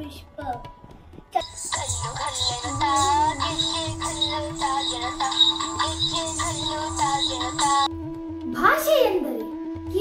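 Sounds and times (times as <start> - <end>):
held drone note: 1.4 - 7.9
person singing wavering melody: 1.4 - 7.9
low repeating beat: 1.4 - 8.0.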